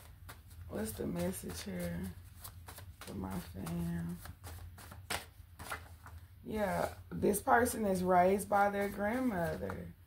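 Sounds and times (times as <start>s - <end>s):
cards being shuffled: 0.0s - 6.3s, 8.8s - 9.9s.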